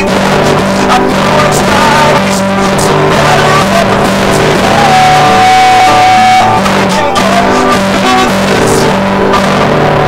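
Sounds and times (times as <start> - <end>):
rock guitar playing: 0.0 - 10.0.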